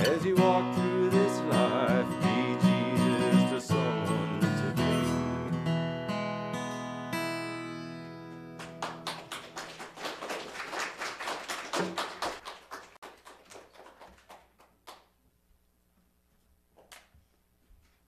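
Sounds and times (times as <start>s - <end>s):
congregation clapping: 8.6s - 15.2s.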